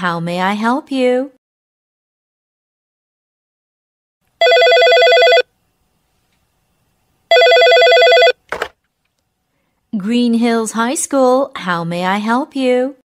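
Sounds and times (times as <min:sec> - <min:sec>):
telephone ringing: 0:04.4 - 0:05.5, 0:07.3 - 0:08.5.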